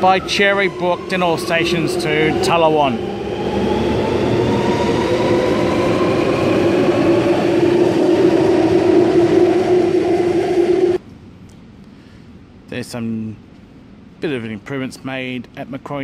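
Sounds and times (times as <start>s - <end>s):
train wheels rumbling: 0.0s - 11.0s.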